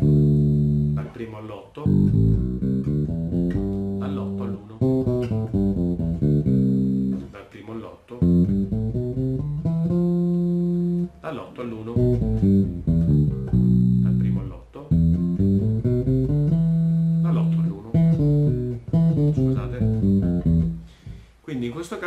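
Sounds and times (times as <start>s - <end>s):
bass guitar playing scales: 0.0s - 7.4s, 8.2s - 21.3s.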